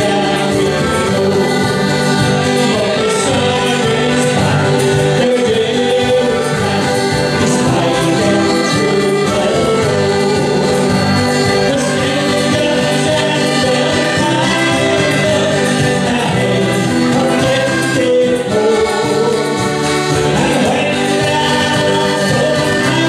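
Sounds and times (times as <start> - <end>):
accordions: 0.0 - 23.0
acoustic guitar: 0.0 - 23.0
fiddle: 0.0 - 23.0
frame drum beat: 0.0 - 23.0.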